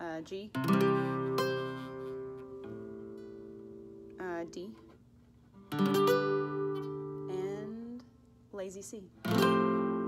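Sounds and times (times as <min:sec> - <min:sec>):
classical guitar chords strummed: 0:00.5 - 0:08.1, 0:09.2 - 0:10.0.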